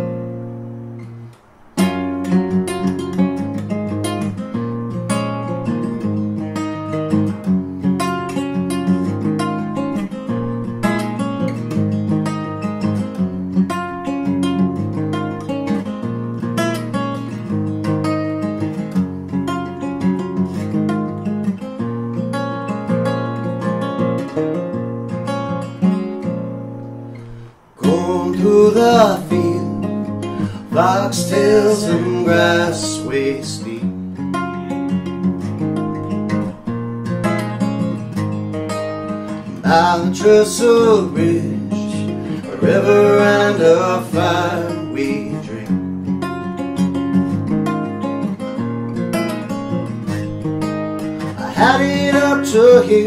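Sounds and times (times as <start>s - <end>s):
acoustic guitar strumming: 0.0s - 53.0s.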